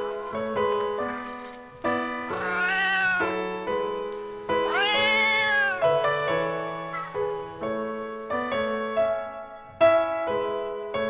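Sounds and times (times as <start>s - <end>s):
piano music: 0.0s - 11.0s
cat meowing: 2.2s - 3.8s, 4.5s - 7.4s.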